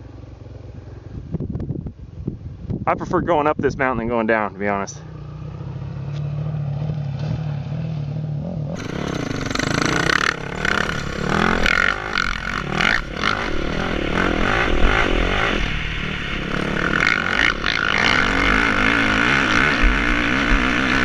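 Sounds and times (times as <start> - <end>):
dirt bike engine: 0.0 - 21.0
wind: 0.0 - 21.0
bike rattling: 5.1 - 21.0.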